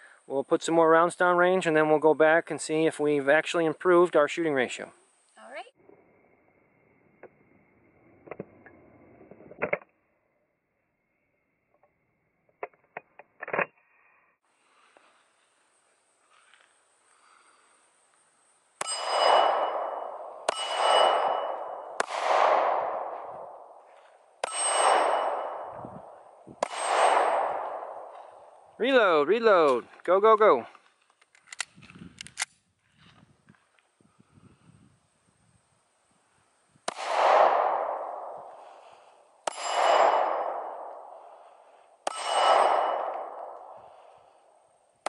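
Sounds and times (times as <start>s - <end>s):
steel plate target clanging: 18.8s - 22.3s, 24.4s - 25.8s, 39.5s - 40.8s, 42.1s - 43.6s
pistol shots: 18.8s - 28.7s, 36.9s - 44.4s.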